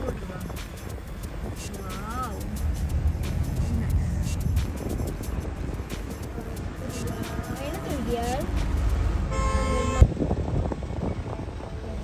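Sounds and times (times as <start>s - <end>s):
moving vehicle rumble: 0.0s - 12.0s
vehicle horn toot: 9.2s - 10.1s.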